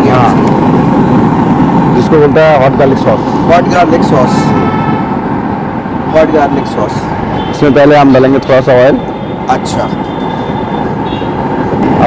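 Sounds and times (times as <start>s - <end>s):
gas burner roaring: 0.0s - 7.4s.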